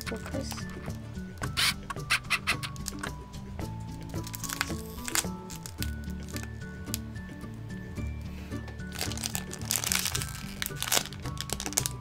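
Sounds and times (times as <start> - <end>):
cellophane bag crinkling: 0.0 - 3.1, 4.0 - 7.0, 8.8 - 12.0
background music: 0.0 - 12.0.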